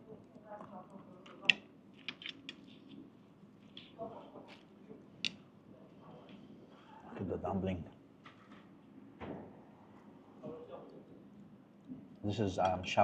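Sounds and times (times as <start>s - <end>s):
chopsticks clicking on plate: 1.2s - 2.7s, 5.2s - 5.4s.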